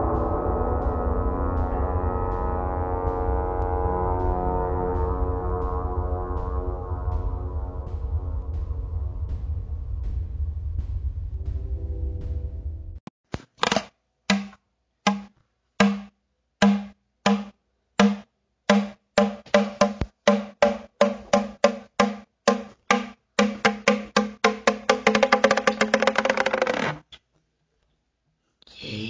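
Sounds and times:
pitched percussion strikes: 0:00.0 - 0:11.6, 0:14.3 - 0:26.6.

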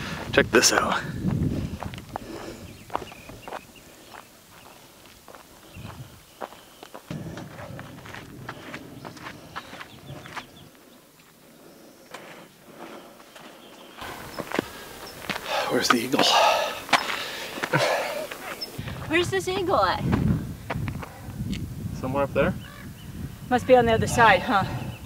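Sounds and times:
footsteps on dirt trail: 0:00.0 - 0:21.2.

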